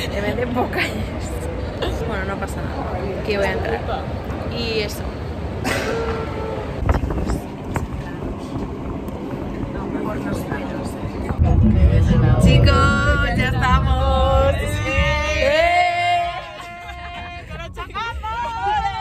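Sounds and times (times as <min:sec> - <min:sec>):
background bustle: 0:00.0 - 0:19.0
indistinct voices: 0:09.5 - 0:19.0.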